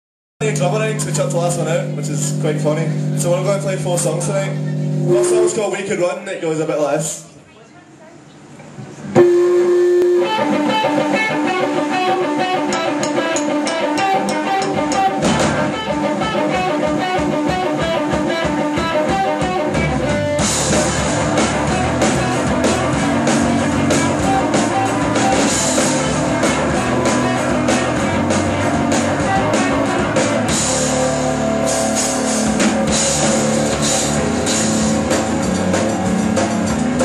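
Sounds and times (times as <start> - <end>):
electric guitar: 0.4 - 5.6, 8.6 - 37.0
live rock band playing: 0.4 - 5.8, 9.1 - 37.0
heavy bass: 0.4 - 6.0, 9.1 - 37.0
cymbals crashing: 4.6 - 5.8.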